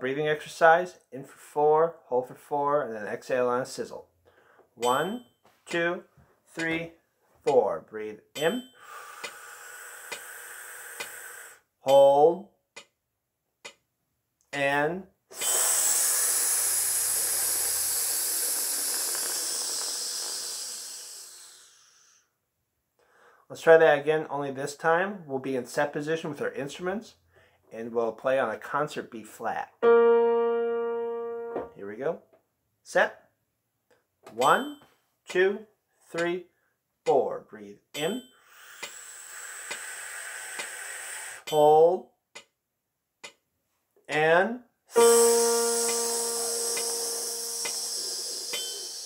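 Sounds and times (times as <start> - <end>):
man hissing through teeth: 8.9 - 11.6, 15.3 - 22.3, 38.5 - 41.5, 45.0 - 49.0.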